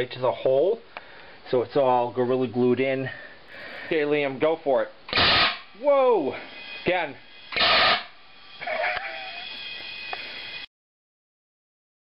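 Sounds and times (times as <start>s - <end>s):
faint high whine: 1.4s - 10.7s
person's high-pitched wavering vocal: 8.6s - 9.6s.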